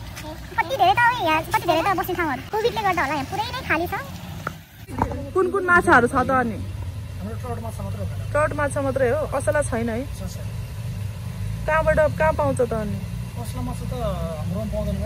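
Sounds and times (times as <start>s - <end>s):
people talking: 0.1s - 4.1s, 4.9s - 10.5s, 11.6s - 15.0s.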